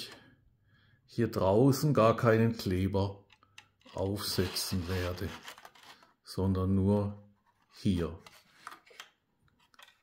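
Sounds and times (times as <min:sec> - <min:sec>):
plastic parts clicking and scraping: 0:03.2 - 0:06.2, 0:07.4 - 0:10.0.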